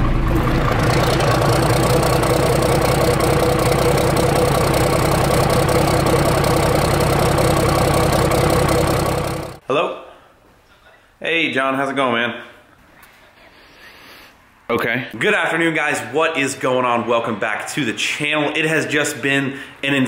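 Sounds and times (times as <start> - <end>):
diesel engine idling: 0.0 - 9.6.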